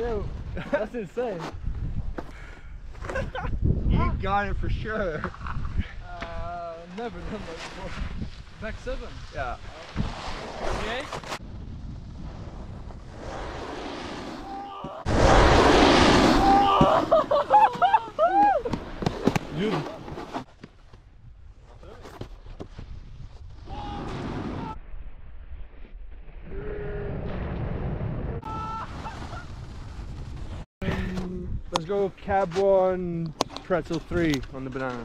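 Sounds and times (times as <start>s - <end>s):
wind and snow rushing: 0.0s - 6.1s, 6.8s - 21.8s, 22.4s - 32.1s
people whooping: 14.4s - 15.1s, 16.3s - 18.8s, 28.4s - 29.2s.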